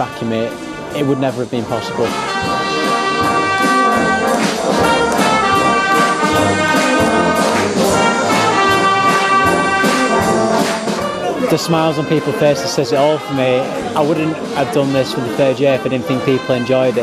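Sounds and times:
brass band playing held chords: 0.0 - 17.0.

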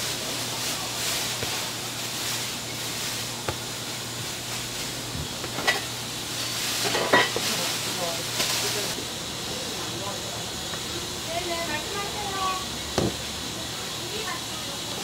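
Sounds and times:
kitchen hiss: 0.0 - 15.0.

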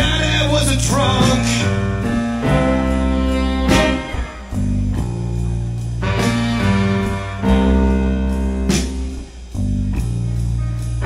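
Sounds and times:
drum or cymbal hit: 0.0 - 8.0
live blues band playing: 0.0 - 11.0.

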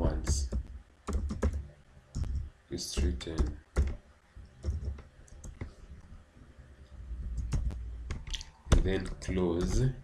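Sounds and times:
computer keyboard keystrokes: 0.2 - 1.6.

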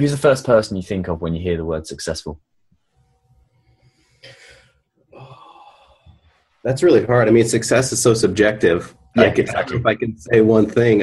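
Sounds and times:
person exhaling softly: 5.2 - 6.2.

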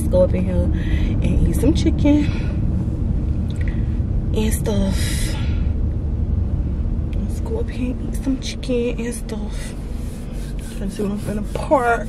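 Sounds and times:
car engine rumble inside cabin: 0.0 - 12.0
road noise: 0.0 - 12.0.

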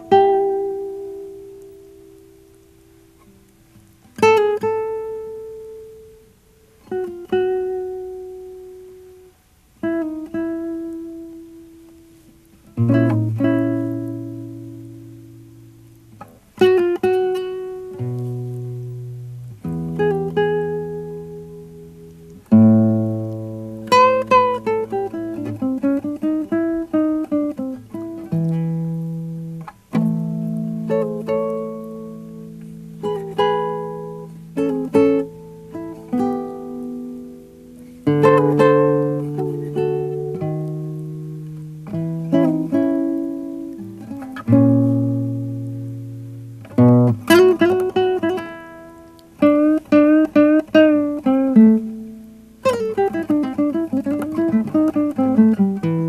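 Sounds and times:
fingerstyle classical guitar blues: 0.0 - 56.0.

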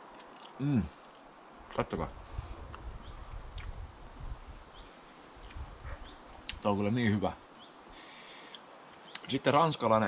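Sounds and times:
person chewing food: 0.0 - 1.3, 3.5 - 3.8, 5.4 - 5.6
faint bird chirps: 4.7 - 9.5.

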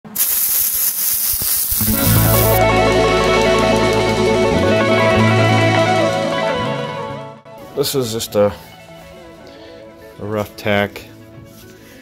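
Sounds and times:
welding arc crackling hiss: 0.0 - 4.2
guitar music: 1.8 - 12.0.

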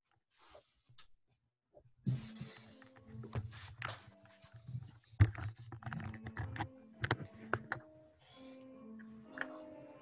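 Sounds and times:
irregular clicks and taps: 5.2 - 7.9.

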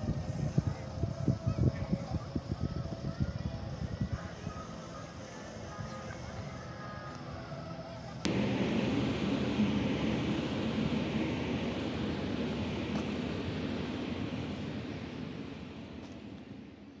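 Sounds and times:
wind noise on microphone: 0.0 - 4.8.

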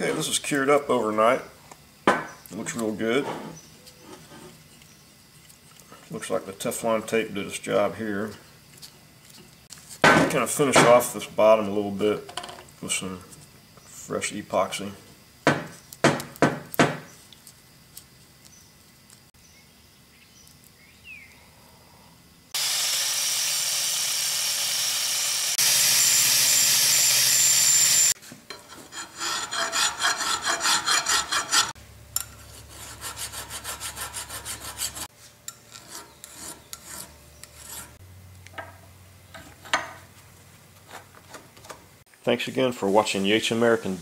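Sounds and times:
angle grinder grinding metal: 22.6 - 38.0
rasping strokes on metal: 23.4 - 38.0.

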